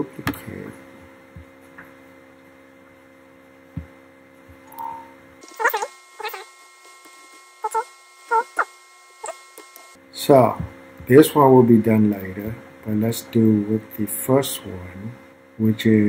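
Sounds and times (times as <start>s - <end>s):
animal whining: 5.4s - 6.5s, 7.6s - 9.4s.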